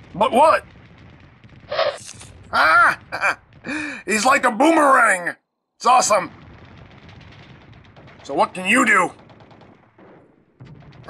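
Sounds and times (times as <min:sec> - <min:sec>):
distant machine-gun fire: 0:00.0 - 0:03.8, 0:06.1 - 0:11.0.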